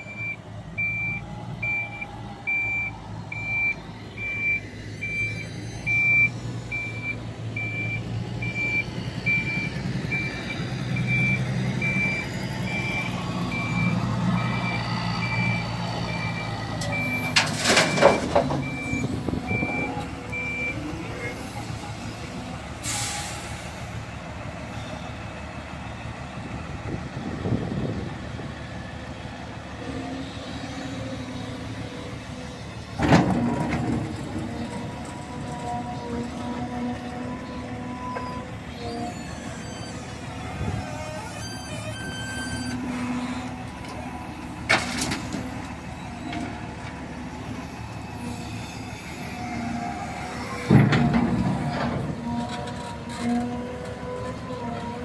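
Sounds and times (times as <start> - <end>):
reversing alarm beeping: 0.0 - 20.9, 37.9 - 43.4
diesel engine running: 0.0 - 55.0.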